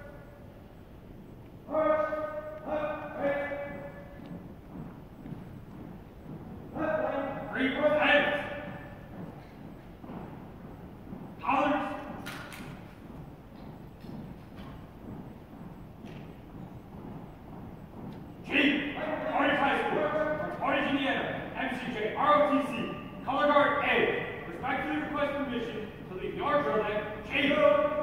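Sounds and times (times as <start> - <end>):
drawn-out shouted commands echoing: 1.6 - 4.4, 6.7 - 9.1, 11.4 - 12.9, 18.4 - 28.0.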